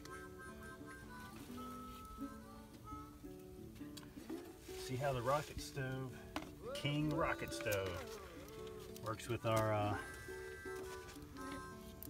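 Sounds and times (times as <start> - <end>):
plucked strings melody: 0.0 - 12.0.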